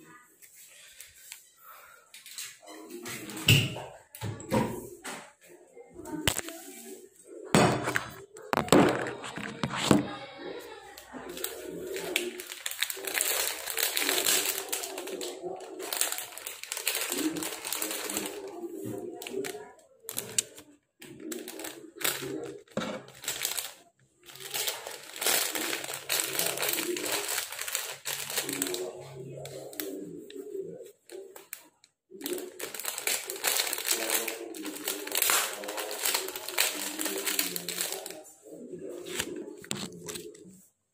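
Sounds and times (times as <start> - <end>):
plastic packaging crinkling: 11.0 - 40.4.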